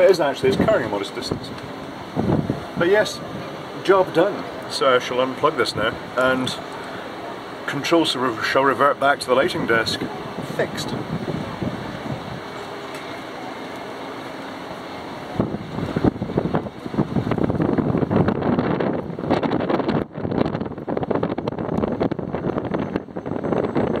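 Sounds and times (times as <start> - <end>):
wind buffeting microphone: 0.4 - 7.6, 9.2 - 24.0.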